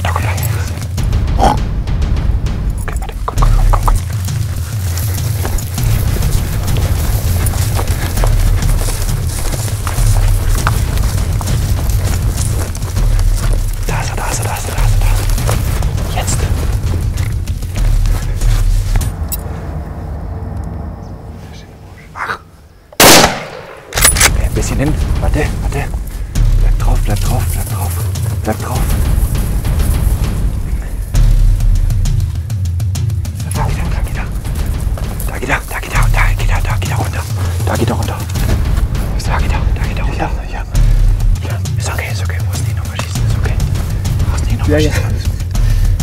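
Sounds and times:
background music with low beat: 0.0s - 21.7s, 23.0s - 46.0s
loud rifle shot: 23.0s - 24.4s.

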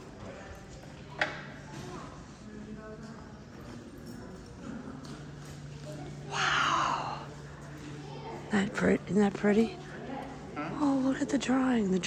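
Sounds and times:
faint voices: 0.0s - 12.0s
steady low hum: 0.0s - 12.0s.

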